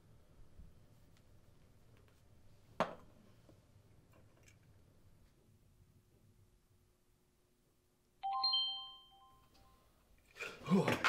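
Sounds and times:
bright bell-like chime: 0:08.2 - 0:09.8.

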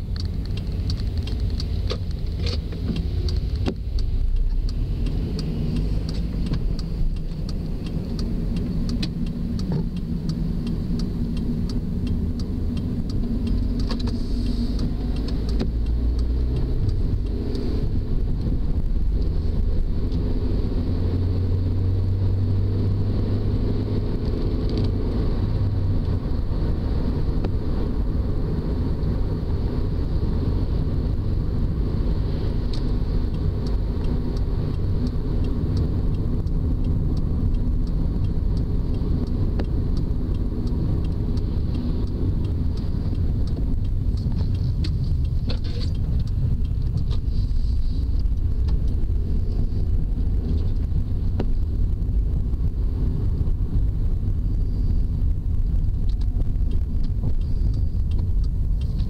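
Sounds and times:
car engine and road noise: 0:00.0 - 0:59.0.

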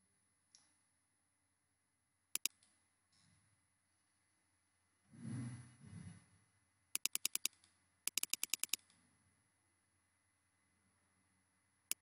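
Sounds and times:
mouse scroll wheel clicks: 0:02.4 - 0:02.8, 0:07.0 - 0:09.0.

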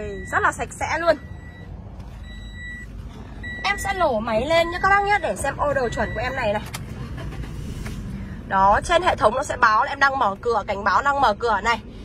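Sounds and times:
car warning chime beeping: 0:00.0 - 0:06.7.

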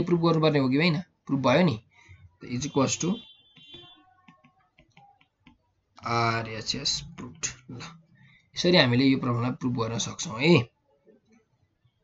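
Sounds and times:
person speaking: 0:00.0 - 0:03.2, 0:06.0 - 0:08.0, 0:08.6 - 0:10.7
stylus tapping on pen tablet: 0:03.6 - 0:05.6.

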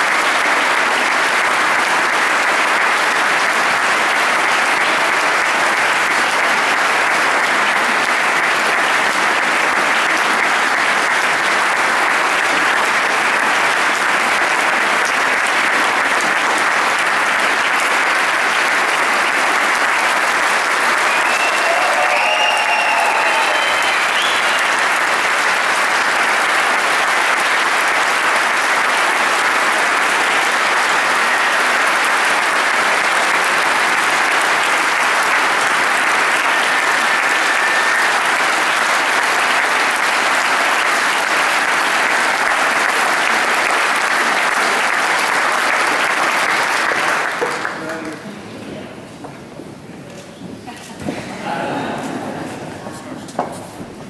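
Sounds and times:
crowd cheering: 0:00.0 - 0:47.8
audience applause: 0:00.0 - 0:48.4.

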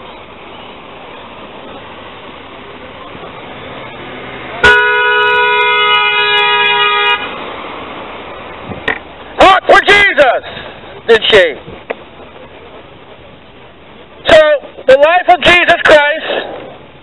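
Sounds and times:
street noise: 0:00.0 - 0:17.0
vehicle horn: 0:04.6 - 0:07.4.

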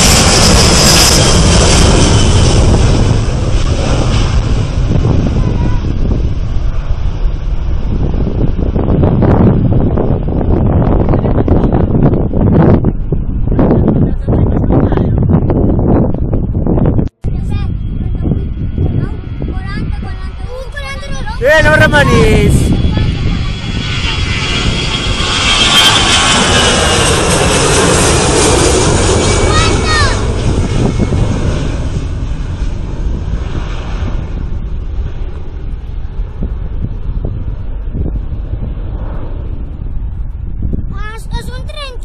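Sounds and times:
high jet whine: 0:00.0 - 0:42.0
jet airliner taking off: 0:00.0 - 0:42.0.

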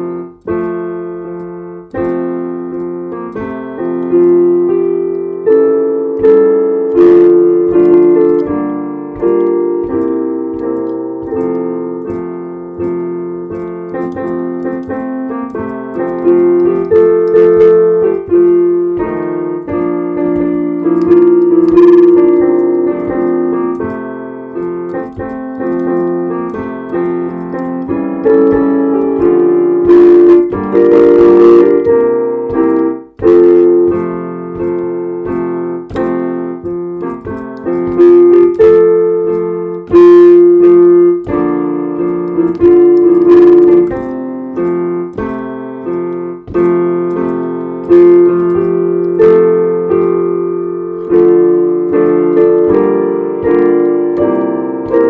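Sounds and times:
piano music: 0:00.0 - 0:55.0.

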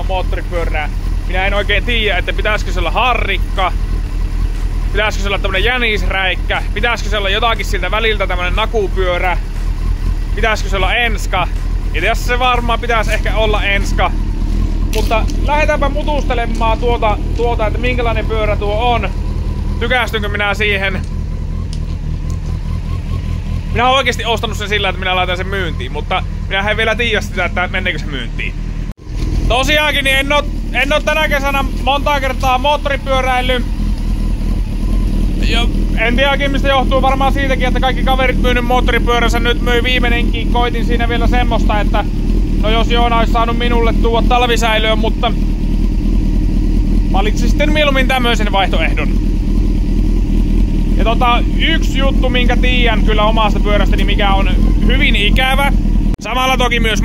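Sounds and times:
vehicle engine idling: 0:00.0 - 0:57.0.

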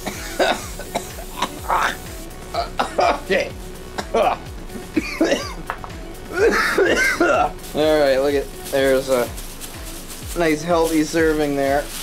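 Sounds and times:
man coughing: 0:00.0 - 0:03.4, 0:04.0 - 0:05.6, 0:06.3 - 0:07.6
man laughing: 0:00.0 - 0:03.4, 0:04.2 - 0:05.7, 0:06.3 - 0:07.5.

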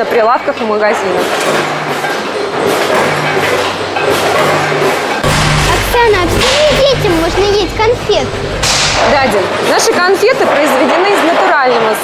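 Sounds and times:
factory machinery clattering: 0:00.0 - 0:12.0
low hum: 0:05.2 - 0:09.6.

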